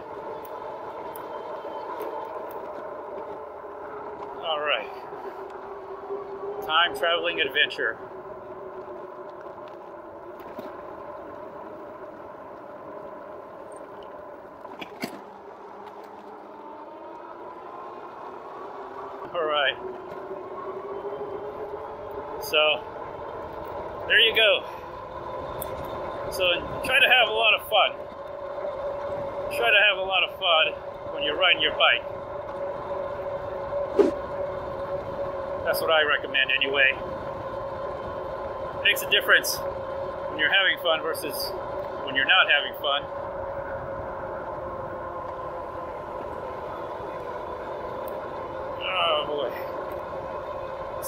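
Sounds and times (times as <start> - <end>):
electric hub motor whine: 0.0 - 51.0
tyre and wind noise: 0.0 - 51.0.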